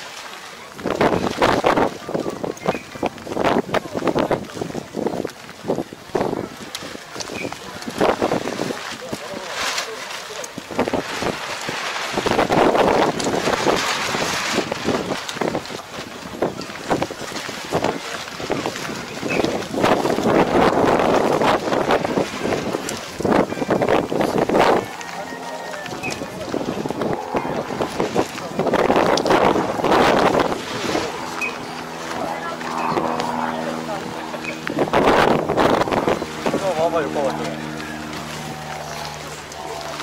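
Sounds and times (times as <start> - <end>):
people's voices in background: 0.0 - 40.0
wind buffeting microphone: 0.6 - 9.5, 10.5 - 40.0.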